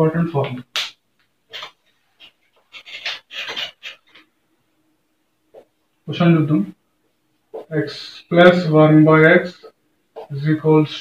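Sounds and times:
eraser rubbing whiteboard: 0:01.5 - 0:04.2, 0:07.5 - 0:07.7.

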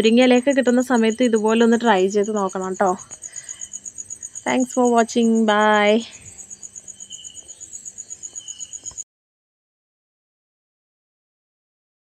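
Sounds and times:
insect chirping: 0:00.0 - 0:09.0.

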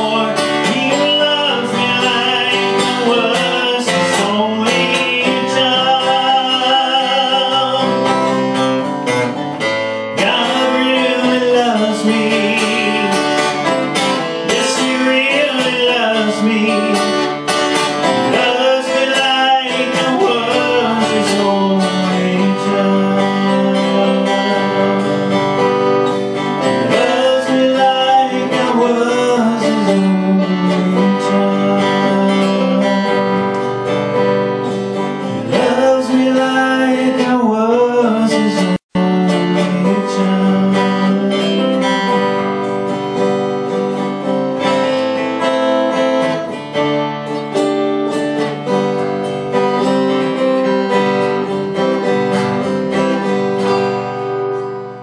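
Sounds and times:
man singing: 0:00.0 - 0:43.2
acoustic guitar chords: 0:00.0 - 0:55.0.

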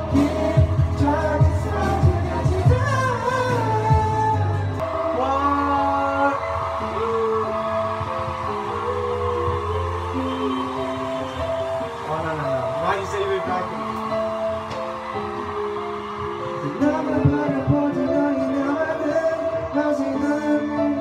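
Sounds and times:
man singing into a microphone: 0:00.0 - 0:07.8, 0:16.6 - 0:21.0
pop backing track: 0:00.0 - 0:21.0.

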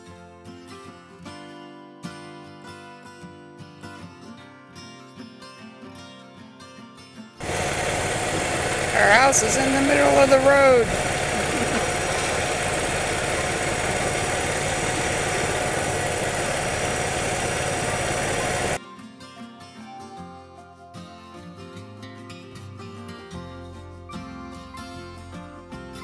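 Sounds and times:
truck engine idling: 0:07.4 - 0:18.8.

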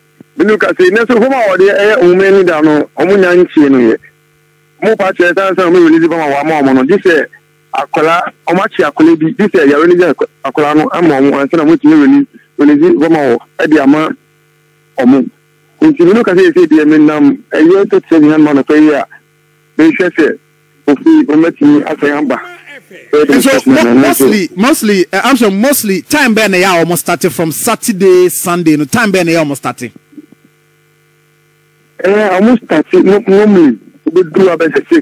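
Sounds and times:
low electrical hum: 0:00.0 - 0:35.0
man talking: 0:00.4 - 0:04.1, 0:04.8 - 0:14.2, 0:15.0 - 0:19.2, 0:19.8 - 0:30.1, 0:32.0 - 0:35.0.

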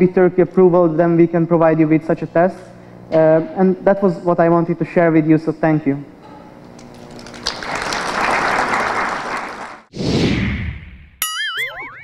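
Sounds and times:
audience applauding: 0:06.8 - 0:09.9
wobbling boinging electronic tones: 0:11.2 - 0:12.0.

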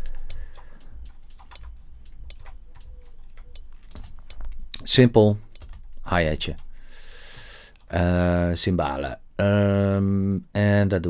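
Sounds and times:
crisp hi-hat ticks: 0:00.0 - 0:07.9.

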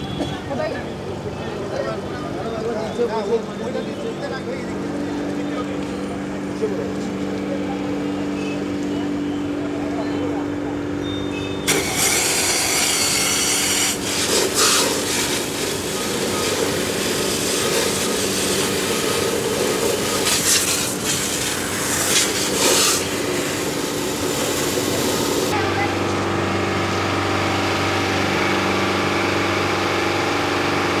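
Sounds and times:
hose nozzle spraying water: 0:11.7 - 0:25.5.

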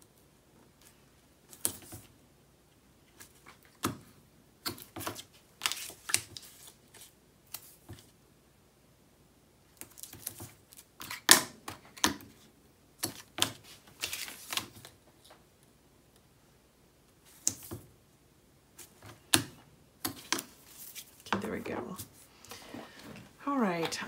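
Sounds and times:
paper rustling: 0:04.9 - 0:08.1, 0:13.0 - 0:15.3, 0:20.1 - 0:21.3.

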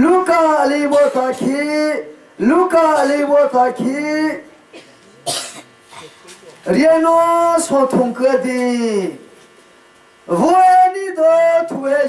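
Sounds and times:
man speaking: 0:00.0 - 0:05.2, 0:06.3 - 0:09.3, 0:10.3 - 0:12.0
man coughing into microphone: 0:00.8 - 0:01.5, 0:04.7 - 0:06.4.

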